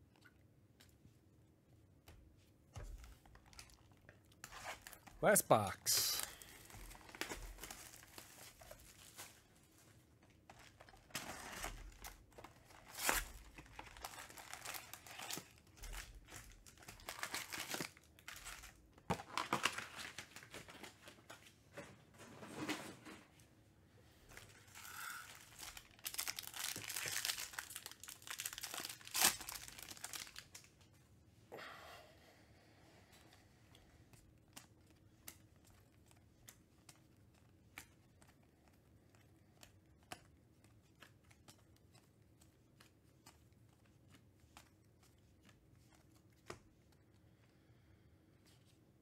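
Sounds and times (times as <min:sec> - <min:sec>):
foil packs crinkling and tearing: 0:06.0 - 0:09.5, 0:10.5 - 0:21.2, 0:24.4 - 0:30.7
plastic wrap crinkling and tearing: 0:06.0 - 0:09.8, 0:10.5 - 0:21.2, 0:24.4 - 0:30.7.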